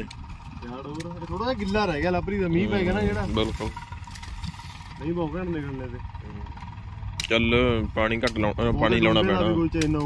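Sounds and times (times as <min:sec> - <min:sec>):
distant tractor rumble: 0:00.0 - 0:10.0.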